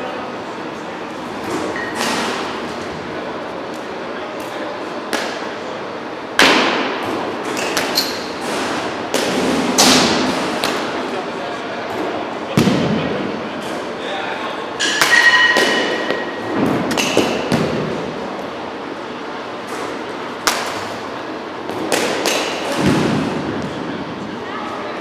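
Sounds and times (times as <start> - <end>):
baseballs striking bats and walls: 4.9 - 5.7, 6.3 - 11.1, 11.9 - 13.4, 14.8 - 18.4, 19.5 - 23.9
ringing bat hit: 14.8 - 16.3.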